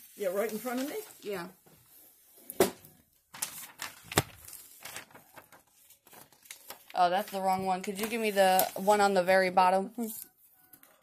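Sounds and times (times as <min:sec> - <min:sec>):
paper rustling: 0:00.0 - 0:01.6, 0:03.3 - 0:10.3.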